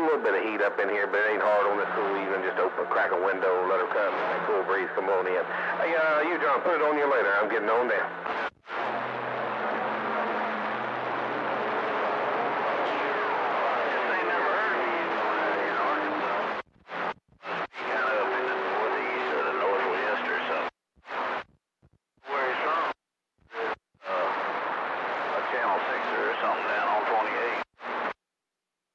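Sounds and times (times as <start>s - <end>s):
radio static hiss: 0.0s - 21.5s, 22.2s - 28.2s.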